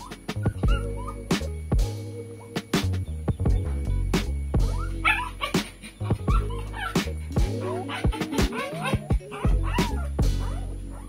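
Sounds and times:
puppy whimpering and yipping: 0.0 - 1.3, 4.7 - 11.0
background music with steady beat: 0.0 - 11.0.

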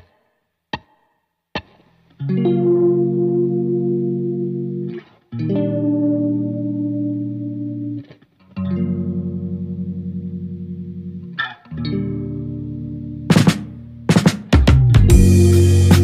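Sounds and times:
slow guitar chords ringing: 2.2 - 14.1, 14.8 - 16.0.

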